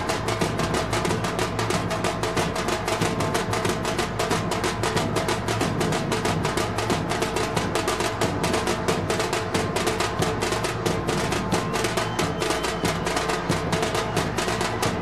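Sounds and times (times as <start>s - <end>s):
fast steady drumming: 0.0s - 15.0s.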